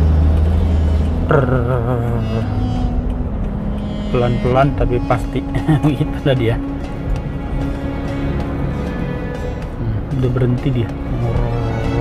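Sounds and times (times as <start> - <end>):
car engine and tyres drone: 0.0 - 12.0
music playing: 0.0 - 12.0
singer holding wavering note: 0.5 - 7.1.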